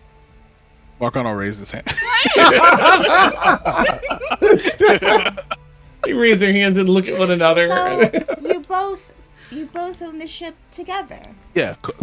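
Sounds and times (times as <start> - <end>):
people laughing: 1.9 - 8.8.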